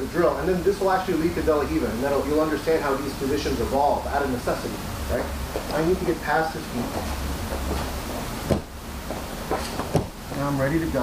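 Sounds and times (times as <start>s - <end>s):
steady low hum: 0.0s - 11.0s
slap on padded mat: 8.5s - 8.8s, 9.8s - 10.2s.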